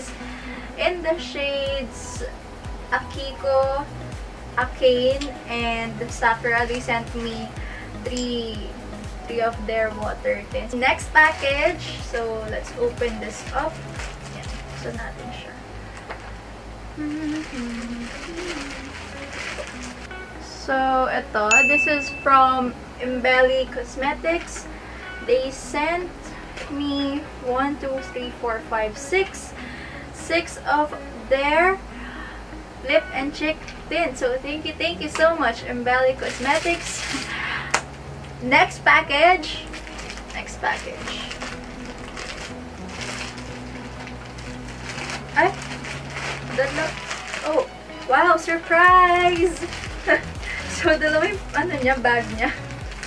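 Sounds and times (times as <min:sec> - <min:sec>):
background music: 0:00.0 - 0:53.0
plastic bag rustling: 0:06.0 - 0:09.5, 0:10.7 - 0:20.4, 0:36.0 - 0:37.7, 0:39.4 - 0:53.0.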